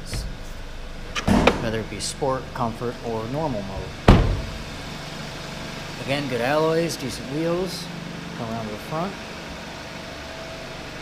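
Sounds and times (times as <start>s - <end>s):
car engine idling: 0.0s - 11.0s
car door thud: 1.2s - 1.8s, 3.8s - 4.7s.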